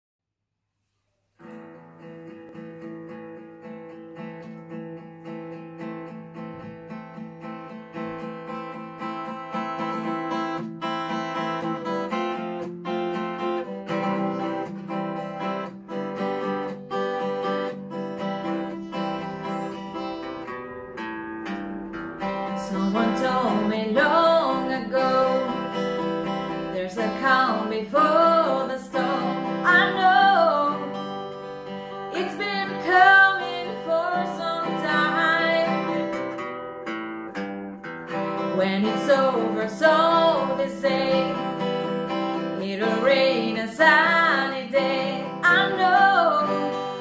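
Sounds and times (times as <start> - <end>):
solo acoustic guitar playing: 1.3 - 47.0.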